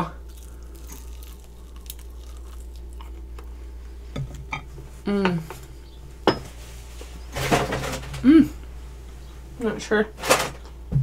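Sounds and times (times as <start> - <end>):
steady low hum: 0.0 - 11.0
person chewing wet smacks: 0.2 - 3.5.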